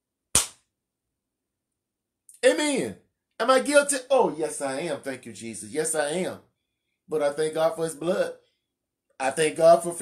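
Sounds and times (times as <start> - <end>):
hand slap: 0.3 - 0.7.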